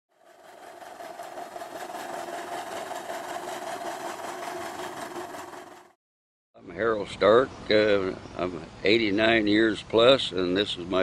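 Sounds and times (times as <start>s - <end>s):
engine running with even clatter: 0.1s - 6.0s.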